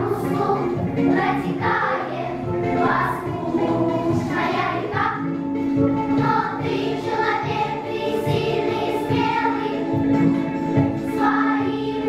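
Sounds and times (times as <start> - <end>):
girls' choir singing: 0.0 - 12.0.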